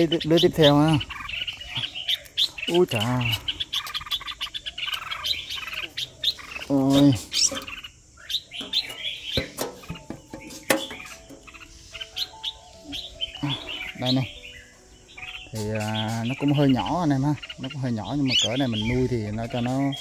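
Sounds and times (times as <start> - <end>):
small birds chirping: 0.0 - 20.0.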